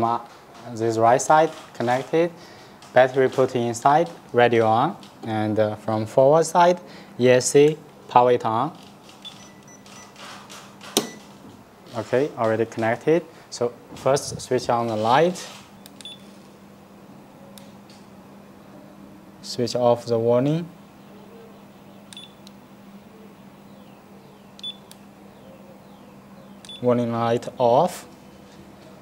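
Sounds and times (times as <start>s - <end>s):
faint steady hum: 0.0s - 29.0s
small switch click: 22.1s - 22.6s.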